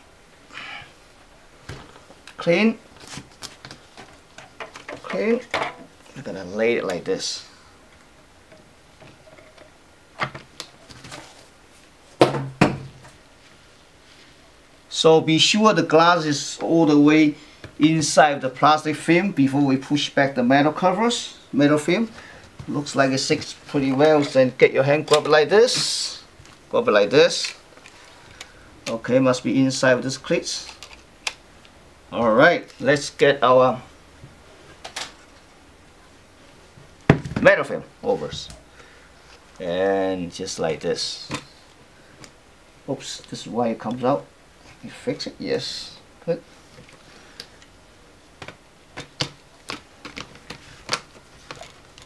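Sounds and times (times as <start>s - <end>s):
faint handling noise: 1.6s - 7.3s, 7.9s - 12.2s, 21.8s - 29.2s, 46.2s - 52.0s.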